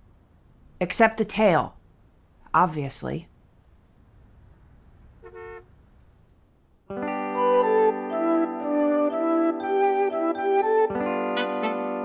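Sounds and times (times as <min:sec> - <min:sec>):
low outdoor rumble: 0:00.0 - 0:06.9
car horn toot: 0:05.2 - 0:05.7
instrumental music: 0:06.9 - 0:12.0.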